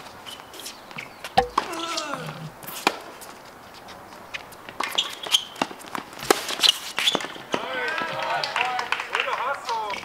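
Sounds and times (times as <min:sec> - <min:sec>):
racket hitting tennis ball: 0:01.4 - 0:01.9.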